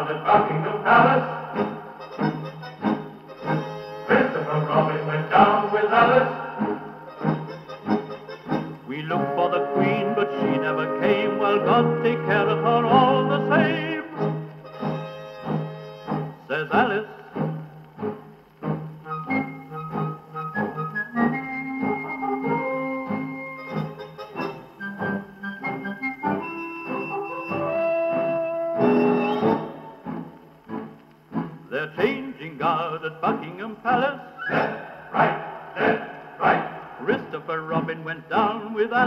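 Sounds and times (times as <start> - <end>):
person singing: 0.0 - 2.3, 3.4 - 7.4, 8.9 - 14.4, 16.4 - 17.7, 31.7 - 39.0
dance band on old record: 0.0 - 39.0
record surface noise: 0.0 - 39.0.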